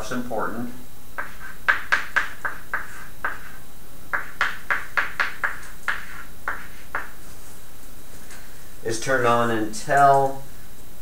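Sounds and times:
chalk tapping on blackboard: 1.2 - 7.2.

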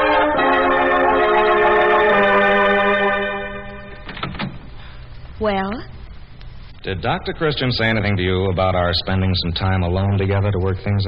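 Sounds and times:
organ chords: 0.0 - 5.2.

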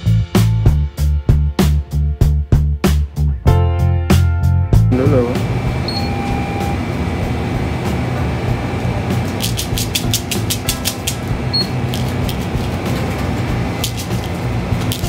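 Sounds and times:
light background music: 0.1 - 15.0
steady low hum: 4.9 - 15.0
short high beep: 5.8 - 6.8.

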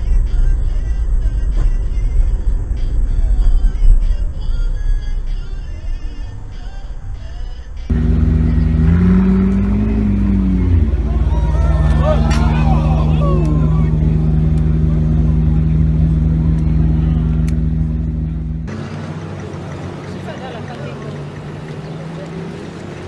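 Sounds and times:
car engine revving and idling: 5.5 - 23.0.

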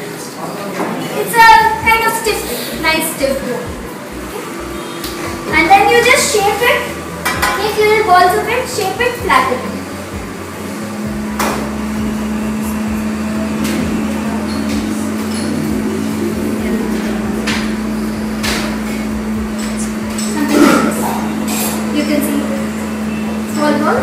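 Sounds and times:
low hum: 1.6 - 24.0.

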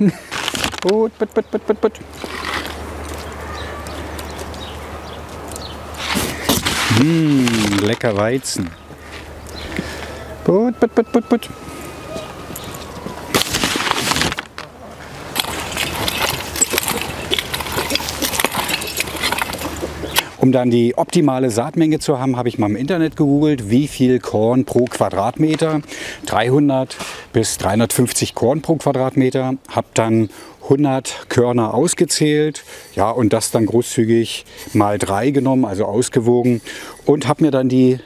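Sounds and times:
man calling chickens: 0.8 - 2.1, 6.9 - 8.9, 10.1 - 12.6, 20.4 - 38.0
rake scratching through dry soil: 2.1 - 2.8, 6.0 - 9.3, 15.4 - 20.1.

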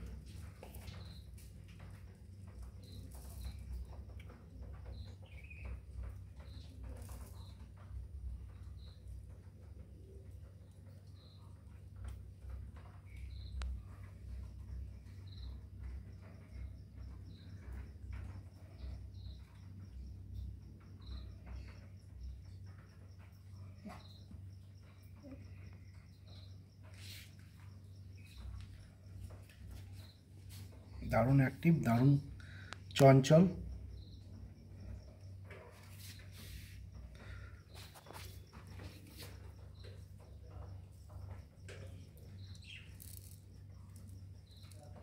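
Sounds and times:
cricket chirping: 0.0 - 45.0.

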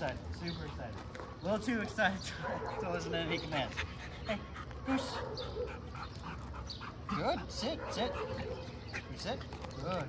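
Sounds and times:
dog panting: 2.4 - 9.8.

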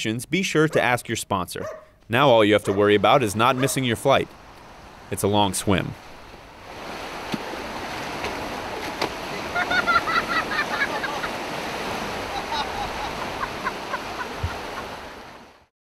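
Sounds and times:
sea surf washing onto beach: 2.8 - 15.7
person splashing into water: 6.8 - 12.4.

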